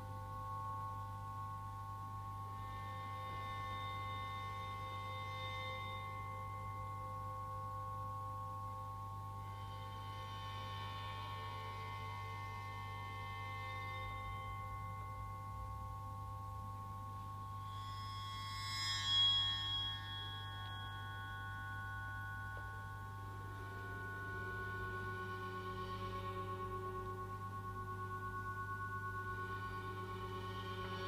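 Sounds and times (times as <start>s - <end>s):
high held drone tones: 0.0s - 31.0s
low hum: 0.0s - 31.0s.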